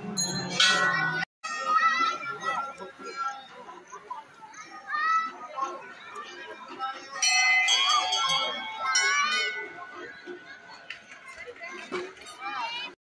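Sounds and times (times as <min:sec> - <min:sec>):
crowd talking and calling out: 0:00.0 - 0:13.0
temple bell ringing: 0:00.1 - 0:01.0, 0:07.2 - 0:10.6.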